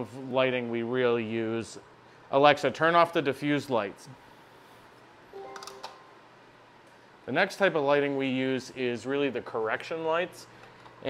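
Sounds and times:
smart speaker confirmation chime: 5.4 - 6.1.

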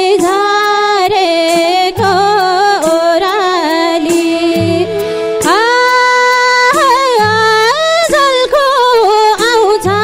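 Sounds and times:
woman singing folk song: 0.0 - 10.0.

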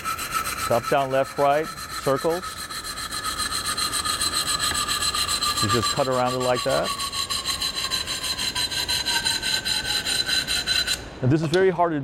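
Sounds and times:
wire saw rasping through tile: 0.0 - 11.0.

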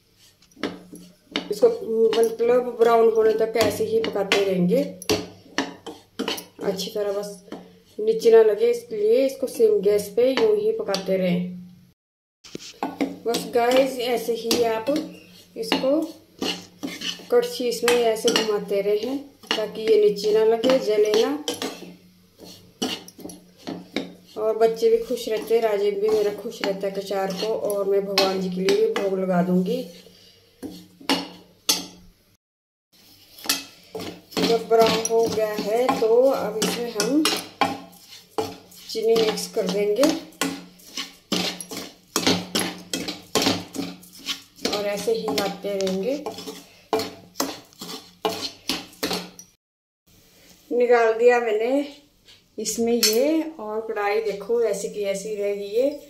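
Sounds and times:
steel ladle scraping a pan: 0.0 - 8.3, 12.5 - 32.0, 33.0 - 49.5.

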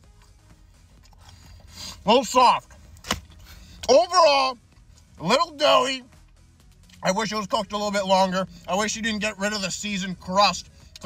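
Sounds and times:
chewing with mouth closed: 1.0 - 1.8.

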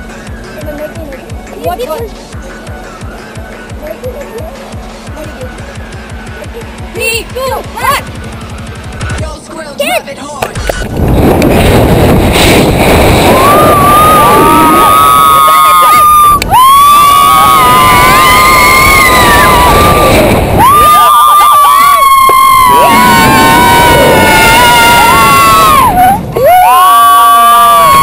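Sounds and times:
wind rushing across microphone: 10.5 - 28.0
people screaming: 13.2 - 28.0.

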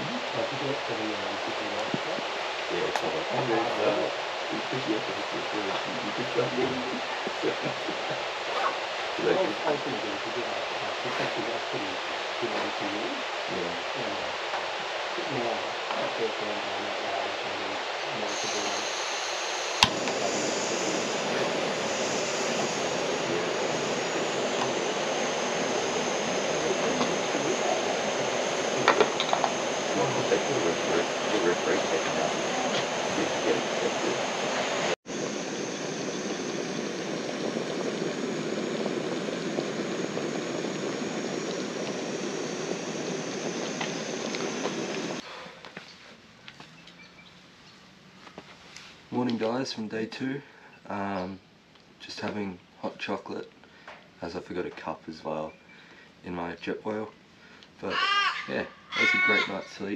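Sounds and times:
gas stove burner hissing: 15.2 - 45.2.

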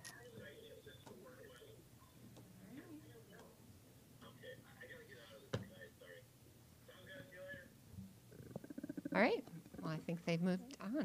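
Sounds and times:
creaky pulsing murmur: 8.3 - 10.1.

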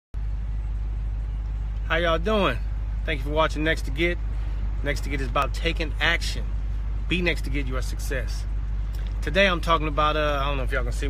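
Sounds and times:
car idling hum: 0.2 - 11.0.

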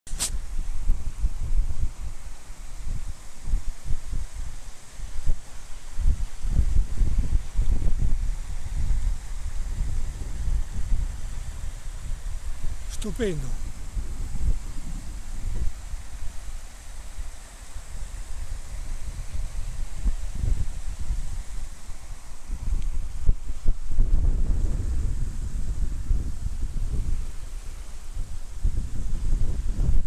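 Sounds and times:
wind buffeting microphone: 0.1 - 30.0.

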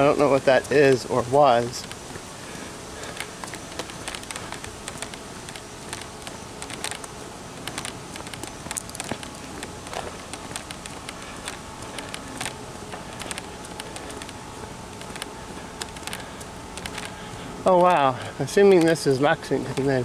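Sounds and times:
footsteps on paved path: 0.0 - 20.0
outdoor background hiss: 0.0 - 20.0.

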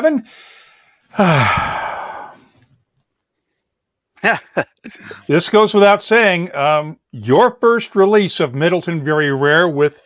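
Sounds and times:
man sighing: 0.3 - 2.6, 4.8 - 5.3.

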